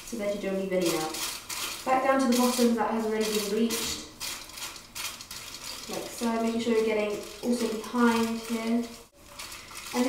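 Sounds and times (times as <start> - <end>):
tin foil crinkling: 0.6 - 10.0.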